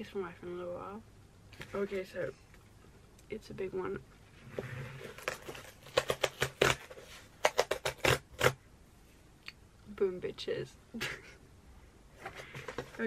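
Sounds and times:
cardboard box tear strip ripping: 5.1s - 8.6s.

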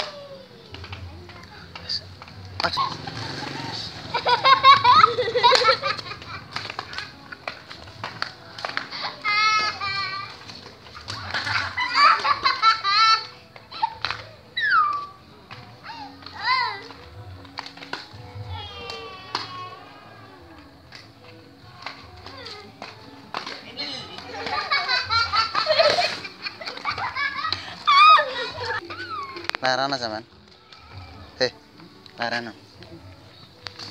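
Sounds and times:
children laughing and shrieking: 0.0s - 0.8s, 2.6s - 7.4s, 8.7s - 17.1s, 18.1s - 20.7s, 24.1s - 29.6s
child's high-pitched shout: 15.8s - 16.9s, 18.4s - 20.1s.

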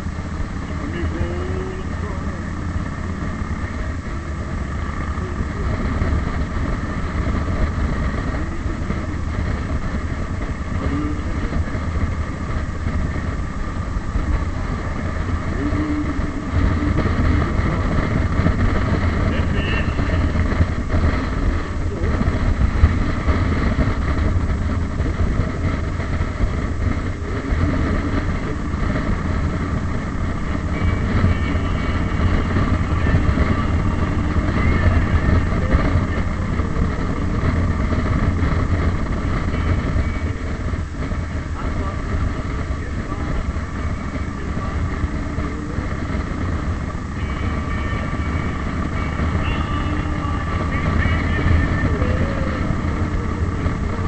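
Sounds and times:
engine drone: 0.0s - 54.0s
road and wind noise: 0.0s - 54.0s.

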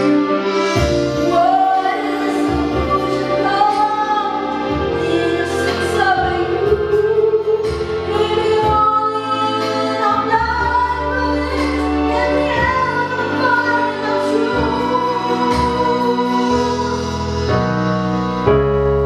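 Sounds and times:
instrumental backing track: 0.0s - 19.0s
woman singing slow song: 1.1s - 17.5s.

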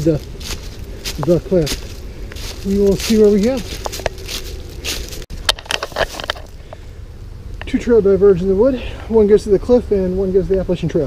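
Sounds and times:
dry leaves crunching underfoot: 0.0s - 6.6s
steady low rumble: 0.0s - 11.0s.

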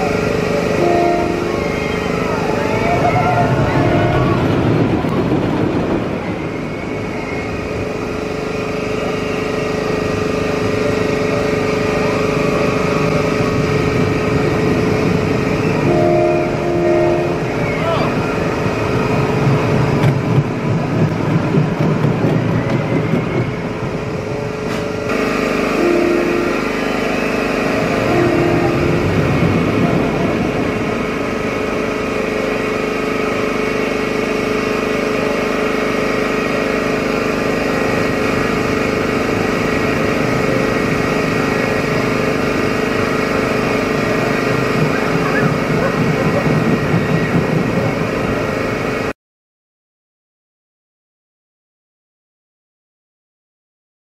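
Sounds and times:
roller coaster rolling on track: 0.0s - 49.1s
riders' voices: 44.7s - 47.5s.

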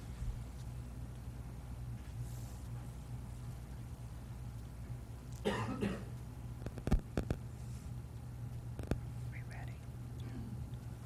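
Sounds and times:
low steady room hum: 0.0s - 11.0s
person coughing: 5.4s - 6.1s.

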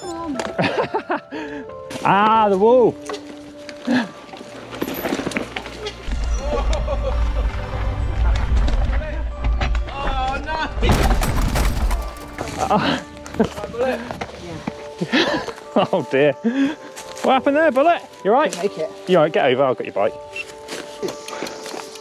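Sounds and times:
background music: 0.0s - 22.0s
people laughing: 0.4s - 1.6s, 6.3s - 8.0s, 12.5s - 13.8s
bike crash clattering rattle: 10.8s - 12.6s.

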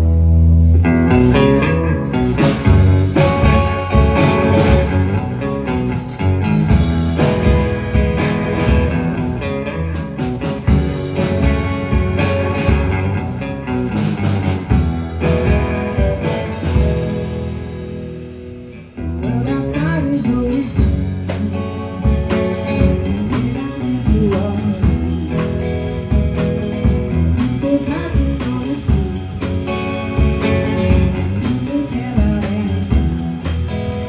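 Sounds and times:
electric guitar: 0.0s - 34.0s
live rock band playing: 0.0s - 34.0s.

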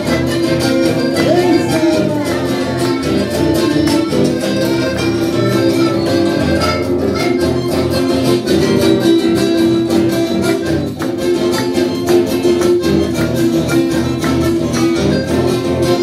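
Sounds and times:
accordion chords: 0.0s - 16.0s
strummed acoustic guitars: 0.0s - 16.0s.

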